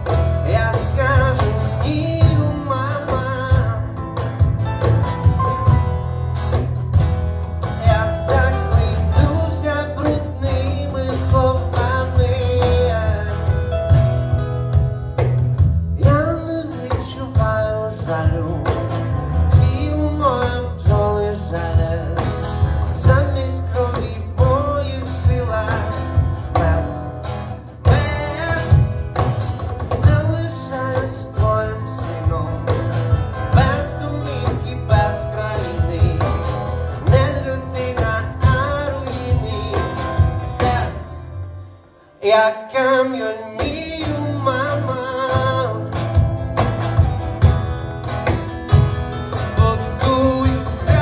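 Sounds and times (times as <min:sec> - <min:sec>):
man singing: 0:00.0 - 0:04.9, 0:07.6 - 0:14.4, 0:15.8 - 0:46.7, 0:48.7 - 0:51.0
hand drum: 0:00.0 - 0:41.2, 0:43.6 - 0:51.0
electric bass: 0:00.0 - 0:42.0, 0:43.7 - 0:51.0
strummed acoustic guitar: 0:00.0 - 0:51.0.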